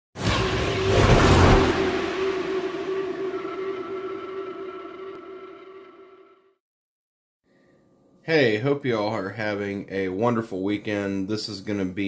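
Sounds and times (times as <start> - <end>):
droning tone with overtones: 0.2 - 6.6.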